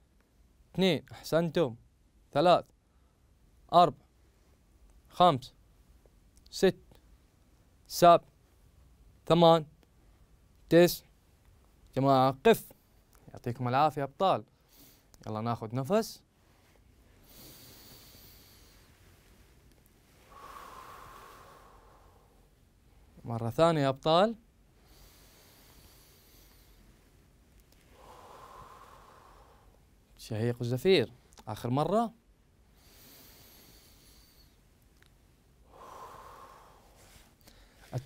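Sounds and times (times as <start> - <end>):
man breathing in: 14.6 - 15.2, 16.6 - 19.4, 20.1 - 23.2, 24.7 - 27.2, 27.8 - 30.0, 32.7 - 34.7, 35.6 - 37.9.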